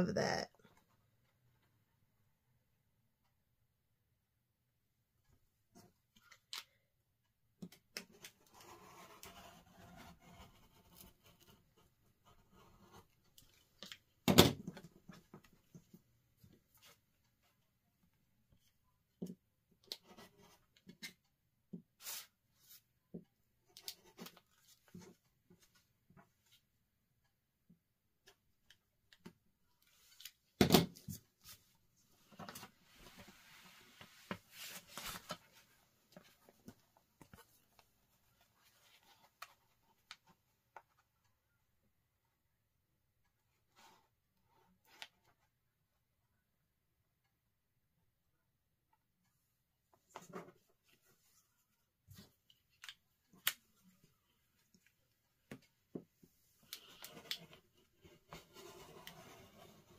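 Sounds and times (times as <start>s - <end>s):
rustling of paper and fabric: 31.1s - 40.4s.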